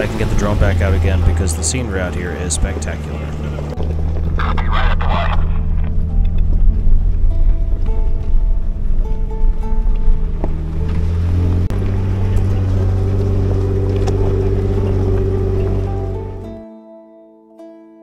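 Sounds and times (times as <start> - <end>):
engine and drivetrain drone: 0.0 - 16.6
plucked-string background music: 0.0 - 18.0.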